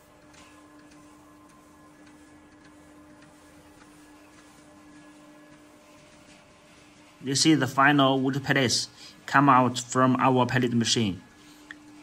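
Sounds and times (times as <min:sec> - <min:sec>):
pellet mill humming: 0:00.0 - 0:12.0.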